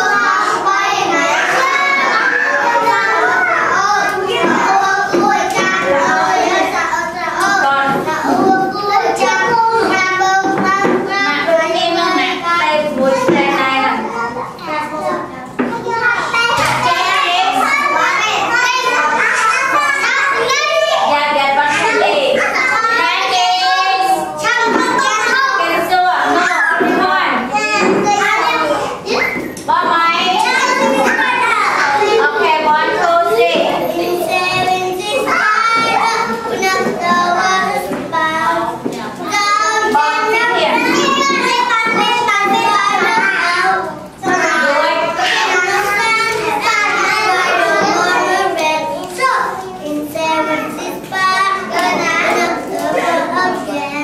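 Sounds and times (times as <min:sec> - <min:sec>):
young children talking: 0:00.0 - 0:54.0.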